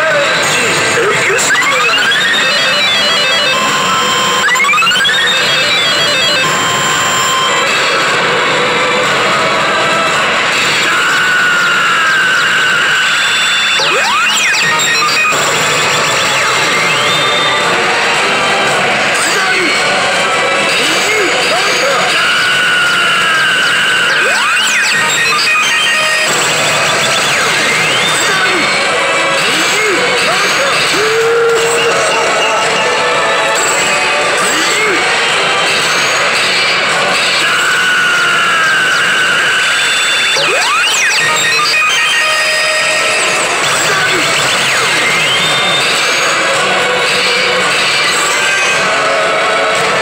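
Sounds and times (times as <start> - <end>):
slot machine music: 0.0 - 50.0
short electronic beeps: 0.3 - 7.9, 10.9 - 17.6, 21.5 - 28.8, 38.6 - 48.9
chiming effects: 0.5 - 7.9
rising electronic sweeps: 0.6 - 8.3.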